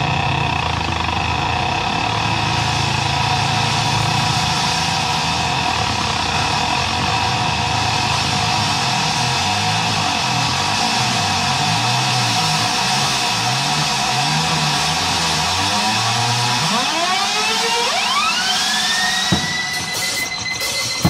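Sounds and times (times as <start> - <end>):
electric keyboard sustained tones: 13.3 - 21.0.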